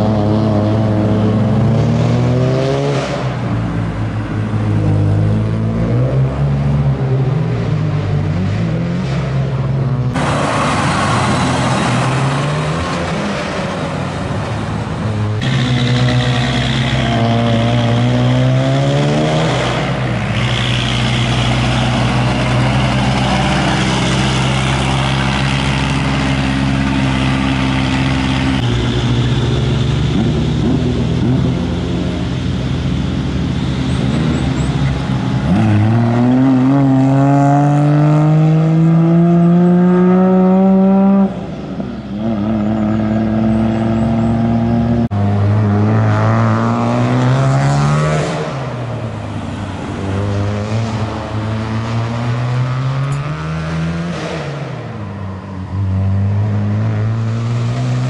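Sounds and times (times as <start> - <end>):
vehicle engines accelerating: 0.0 - 58.0.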